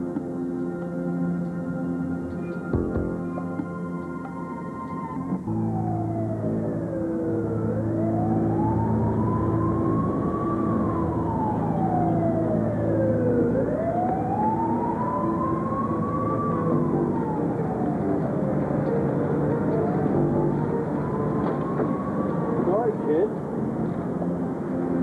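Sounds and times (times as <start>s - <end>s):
siren wailing: 0.0s - 25.0s.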